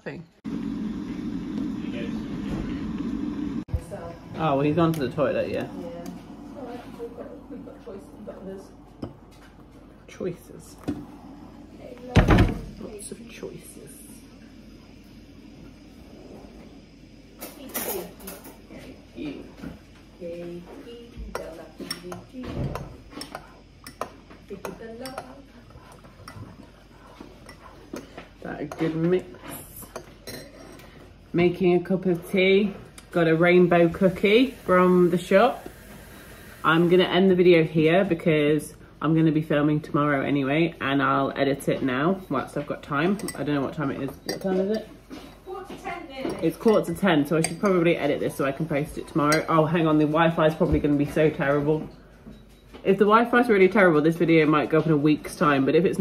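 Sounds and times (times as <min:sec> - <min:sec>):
electric kettle heating water: 0:00.5 - 0:27.2, 0:31.4 - 0:44.5
teaspoon stirring in mug: 0:23.1 - 0:30.8, 0:46.2 - 0:48.0, 0:49.2 - 0:49.6.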